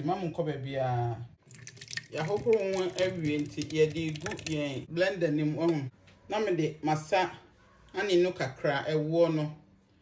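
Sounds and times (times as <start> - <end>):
liquid pouring into blender jar: 1.4 - 4.8
person speaking: 1.8 - 8.9.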